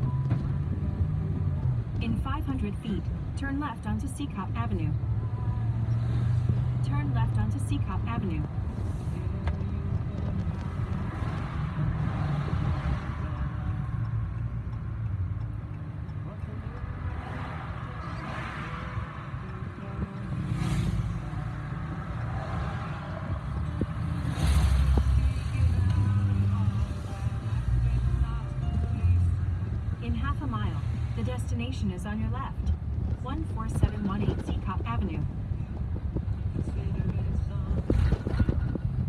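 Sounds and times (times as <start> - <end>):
car road and engine rumble: 0.0 - 39.0.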